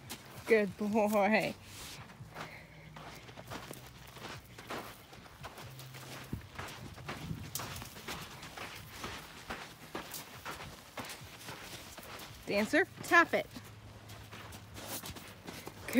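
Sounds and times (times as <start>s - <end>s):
footsteps on sand: 0.0s - 15.9s
horse hooves on sand: 0.0s - 15.9s.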